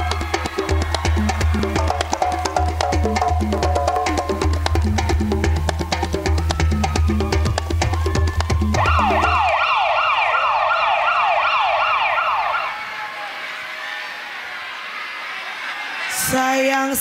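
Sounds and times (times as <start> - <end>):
dance music beat: 0.0 - 9.5
siren wailing: 6.2 - 14.4.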